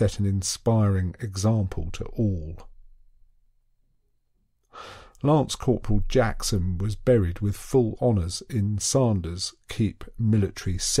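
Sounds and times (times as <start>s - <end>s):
person breathing in: 4.7s - 5.2s.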